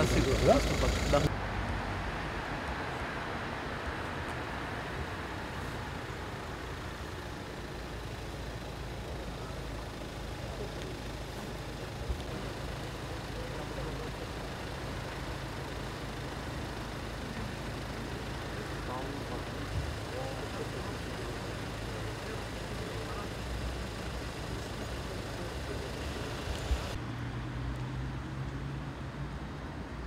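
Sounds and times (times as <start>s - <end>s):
cars idling: 0.0s - 1.3s, 3.9s - 27.0s
faint indistinct voices: 5.6s - 27.0s.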